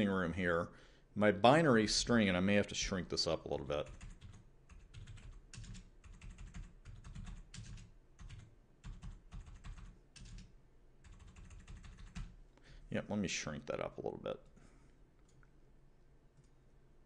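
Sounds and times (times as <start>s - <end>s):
typing on computer keyboard: 3.8s - 12.4s.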